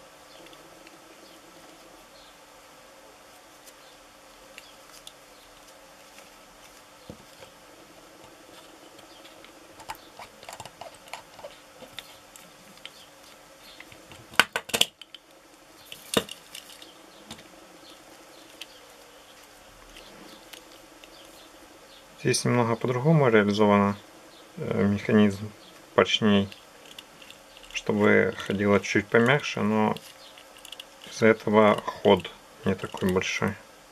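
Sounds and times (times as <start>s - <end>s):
faint steady hum: 0.0s - 33.9s.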